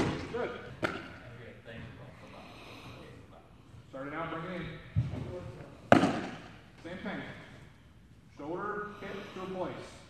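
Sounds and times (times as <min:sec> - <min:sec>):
baseball smacking into leather mitt: 0:00.0 - 0:01.2, 0:05.9 - 0:06.6.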